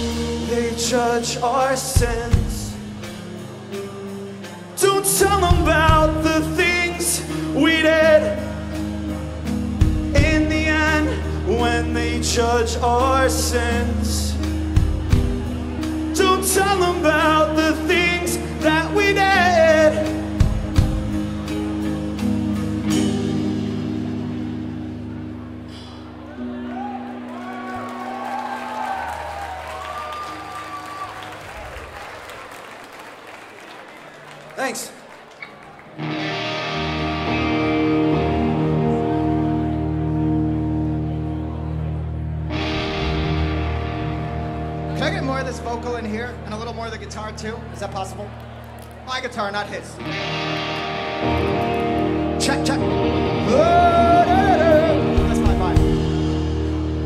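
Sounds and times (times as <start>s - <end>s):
sustained electric guitars and bass: 0.0s - 29.5s, 36.0s - 49.0s, 49.6s - 57.0s
electric guitar ringing chord: 36.0s - 45.9s, 50.0s - 57.0s
rock band final chord: 42.4s - 45.0s.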